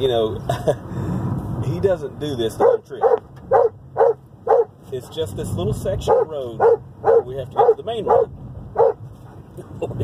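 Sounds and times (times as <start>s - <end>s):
dog barking loudly: 2.6s - 4.8s, 6.0s - 9.0s.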